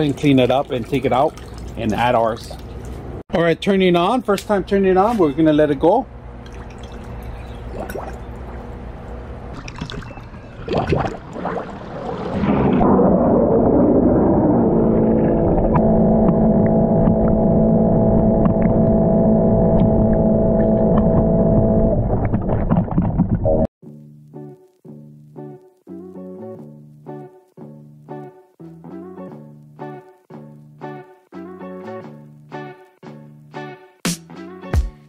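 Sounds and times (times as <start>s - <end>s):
water sloshing and gurgling: 0.0s - 3.2s, 6.4s - 19.0s, 19.8s - 23.7s
pool cleaner motors humming: 5.8s - 9.5s.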